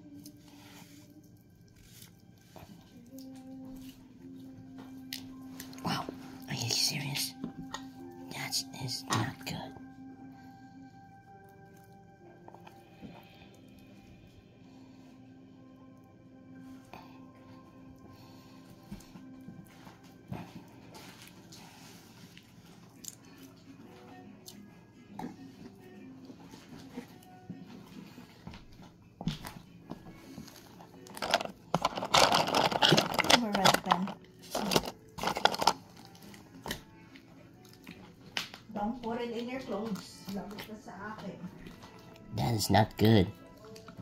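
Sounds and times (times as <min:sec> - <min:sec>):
faint background music: 0:00.0 - 0:44.0.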